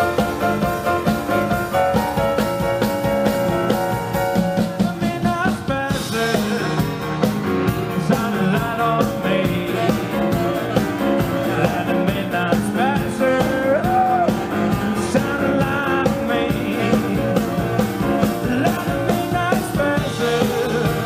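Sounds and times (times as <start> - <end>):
rock band playing: 0.0 - 21.0
saxophone solo: 9.5 - 12.2, 12.8 - 18.5.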